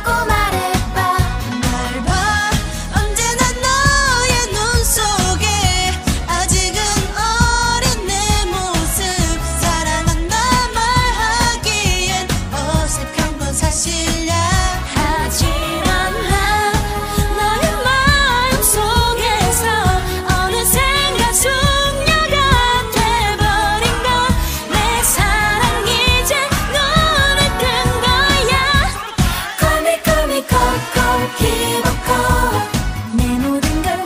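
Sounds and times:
backing track: 0.0 - 34.0
female vocals singing pop song: 0.0 - 34.0.

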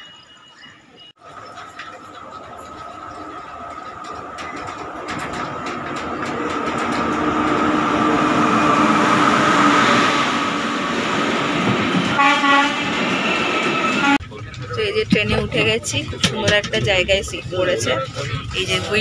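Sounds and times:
train rumble: 0.0 - 19.0.

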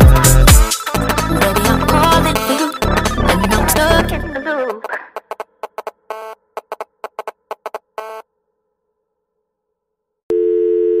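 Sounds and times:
electronic dance music: 0.0 - 5.9
telephone line tone: 10.3 - 11.0.

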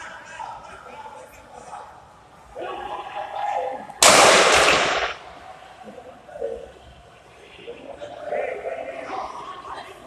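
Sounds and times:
loud gunshot bang: 4.0 - 5.2.

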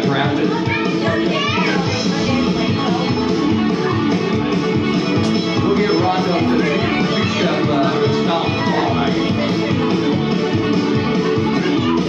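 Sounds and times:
karaoke backing track: 0.0 - 12.0
people calling out: 5.2 - 12.0.

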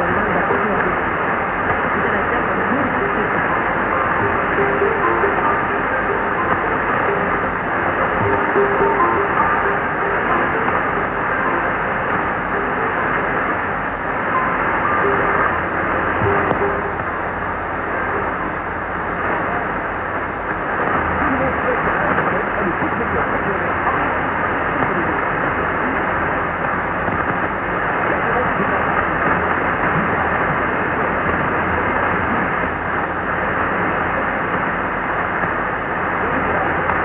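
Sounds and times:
radio static and hiss: 0.0 - 37.0.

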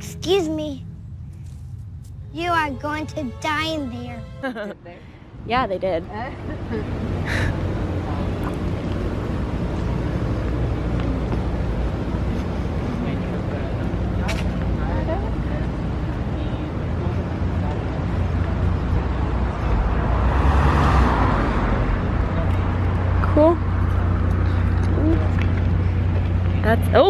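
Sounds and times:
road noise: 0.0 - 27.0
traffic noise: 0.0 - 27.0
vehicle engine rumble: 0.0 - 27.0.

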